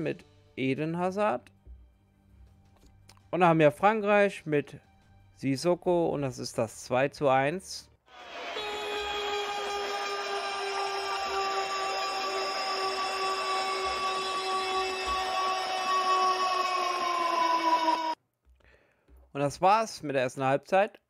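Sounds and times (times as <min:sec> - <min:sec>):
long horn-like blast: 0:08.2 - 0:18.2.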